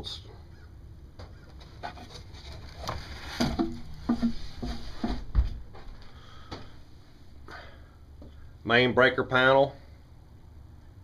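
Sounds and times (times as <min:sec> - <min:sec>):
footsteps in wooden room: 0:02.4 - 0:06.8.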